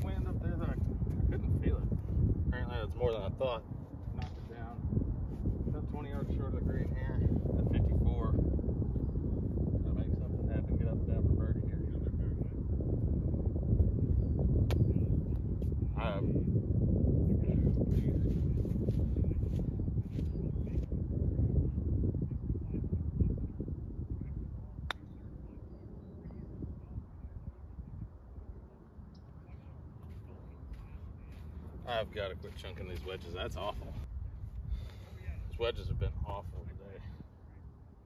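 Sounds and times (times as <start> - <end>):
wind buffeting microphone: 0.0 - 38.0.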